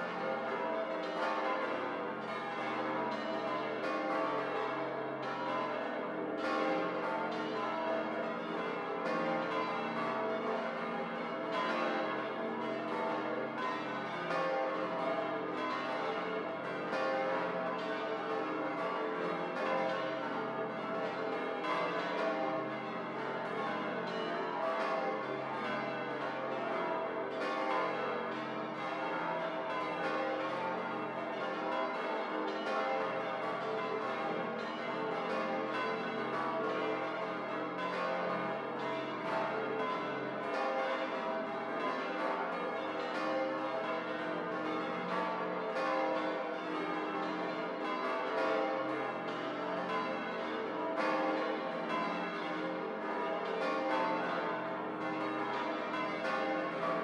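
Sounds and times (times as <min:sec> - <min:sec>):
church bells ringing: 0:00.0 - 0:57.0.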